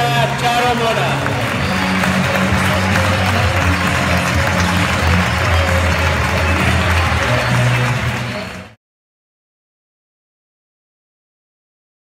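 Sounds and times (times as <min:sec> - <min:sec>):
audience applauding: 0:00.0 - 0:08.8.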